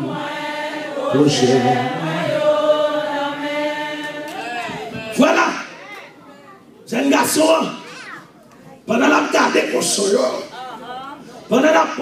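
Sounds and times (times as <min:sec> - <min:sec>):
voices singing a held note: 0:00.0 - 0:05.8.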